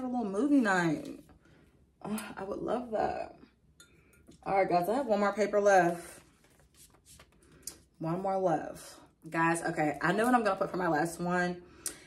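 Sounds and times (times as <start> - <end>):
paper and pen rustling: 5.8 - 7.9.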